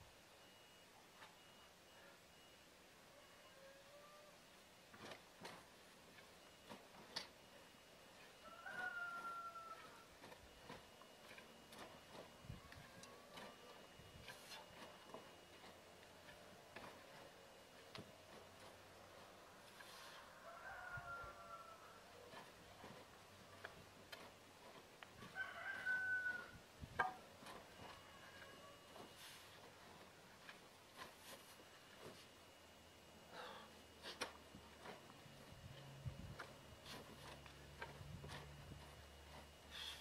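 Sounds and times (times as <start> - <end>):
rooster crowing: 3.1 - 4.4, 8.4 - 10.2, 19.4 - 23.0, 25.2 - 26.6, 27.8 - 29.1.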